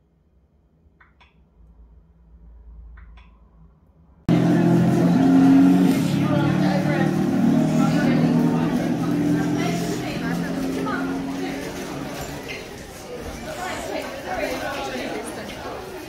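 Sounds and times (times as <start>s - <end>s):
car engine running: 4.3s - 12.8s
people's voices: 4.3s - 16.0s.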